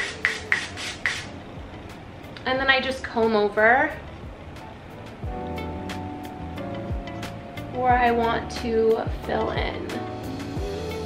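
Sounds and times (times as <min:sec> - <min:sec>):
aerosol spray hissing: 0:00.0 - 0:01.3.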